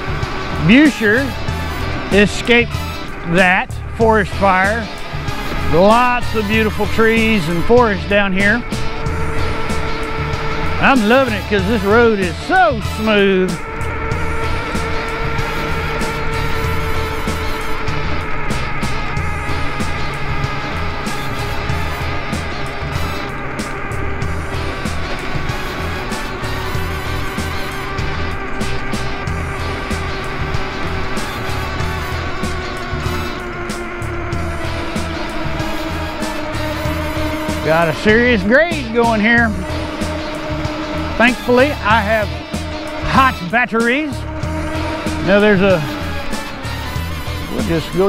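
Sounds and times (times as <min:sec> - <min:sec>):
electric motor whine: 0:00.0 - 0:48.0
tyres rumbling on pavement: 0:00.0 - 0:48.0
wind: 0:00.0 - 0:48.0.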